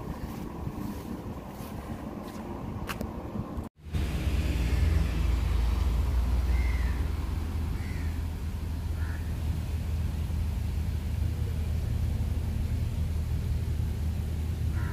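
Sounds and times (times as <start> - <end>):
steady low rumble: 0.0 - 14.9.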